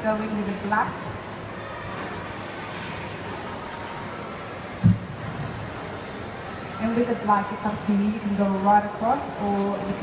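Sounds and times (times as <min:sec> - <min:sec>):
shopping mall background hum: 0:00.0 - 0:10.0.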